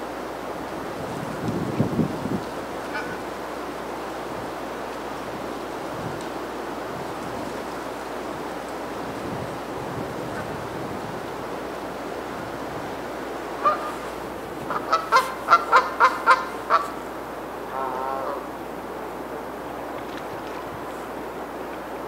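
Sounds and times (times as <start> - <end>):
steady background hiss: 0.0 - 22.0.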